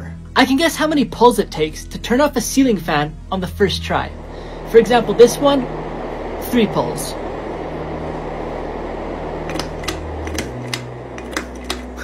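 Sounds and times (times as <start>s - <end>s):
ceiling fan humming: 0.0s - 12.0s.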